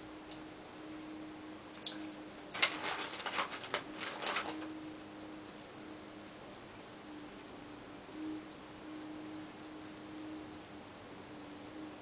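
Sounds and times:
faint steady hum: 0.0 - 12.0
rustling: 2.5 - 4.8
makeup items clicking and rattling: 2.6 - 4.7.

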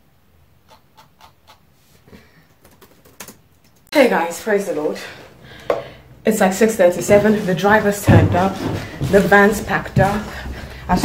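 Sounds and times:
typing on laptop keyboard: 2.6 - 3.8.

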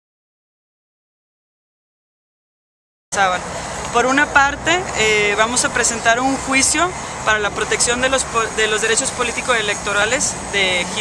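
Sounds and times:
low hum of street traffic: 3.1 - 11.0
woman talking: 3.1 - 11.0.

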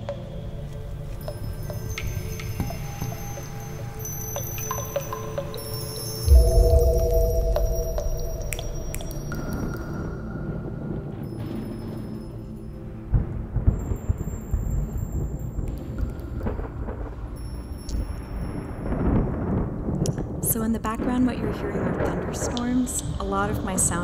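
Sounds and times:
rain: 0.0 - 24.0
small bells tinkling: 1.3 - 10.2
rolling thunder rumbles: 6.3 - 12.2, 16.4 - 17.4, 18.0 - 24.0.

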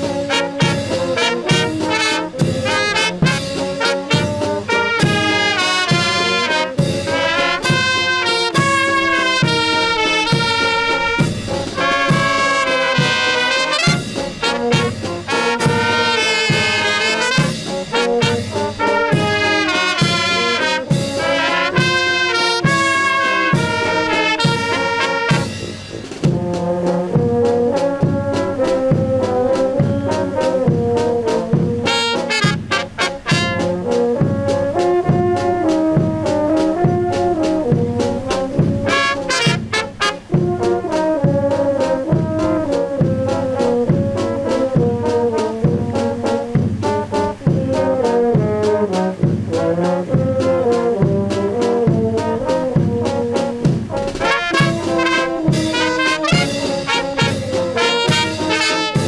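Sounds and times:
brass band playing: 0.0 - 59.0
low brass steady beat: 0.0 - 59.0
trumpets playing melody: 0.0 - 59.0.

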